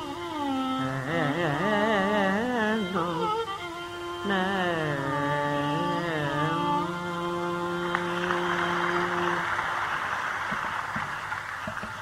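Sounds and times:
audience applause: 7.9s - 12.0s.

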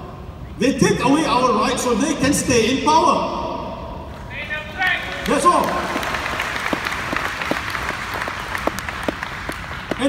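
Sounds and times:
audience applauding: 4.9s - 10.0s.

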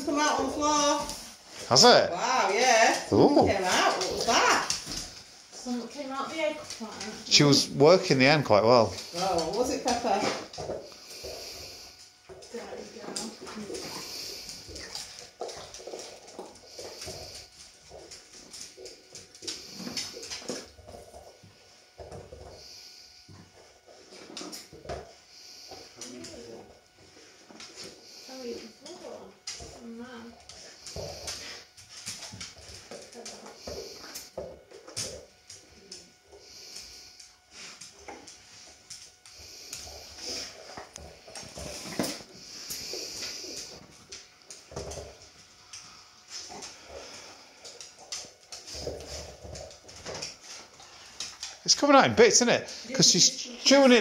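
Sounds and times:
dog chewing rubber toy: 2.9s - 51.6s.

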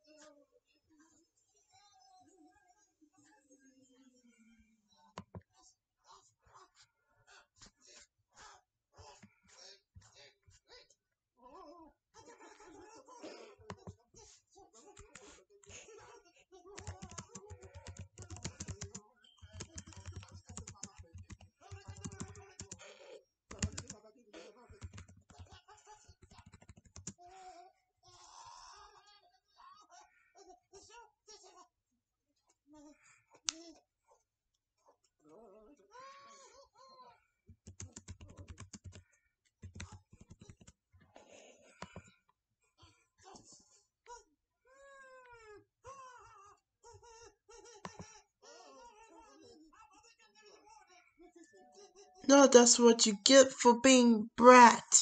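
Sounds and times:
computer keyboard typing: 5.2s - 5.4s, 13.7s - 14.0s, 15.0s - 15.2s, 16.8s - 22.8s, 23.5s - 24.0s, 24.7s - 27.2s, 37.5s - 39.0s, 39.6s - 40.8s, 41.8s - 42.1s, 47.8s - 48.0s.

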